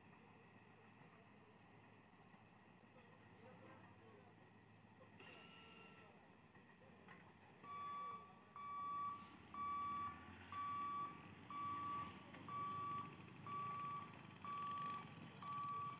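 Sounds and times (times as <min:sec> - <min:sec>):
level crossing warning beeps: 0:05.3 - 0:06.1, 0:07.6 - 0:15.9
motorcycle engines rumbling: 0:09.2 - 0:15.9.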